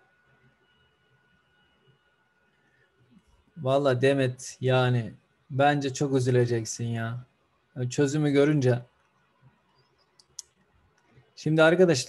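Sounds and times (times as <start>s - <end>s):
faint short clicks: 10.0s - 11.1s.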